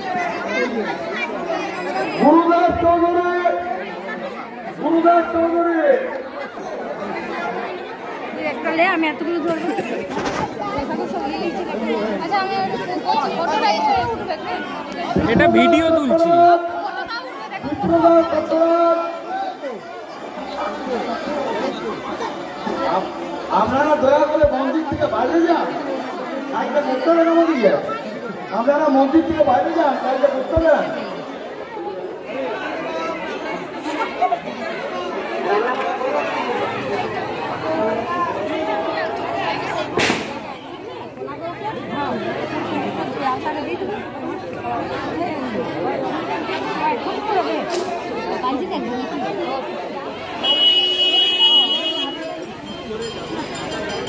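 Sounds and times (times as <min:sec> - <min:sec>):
overlapping chatter: 0:00.0 - 0:54.0.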